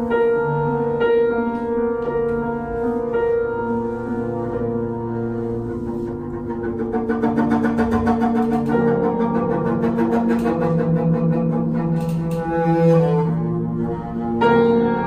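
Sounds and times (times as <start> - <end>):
bowed double bass notes: 0.0 - 15.0
grand piano playing: 0.0 - 15.0.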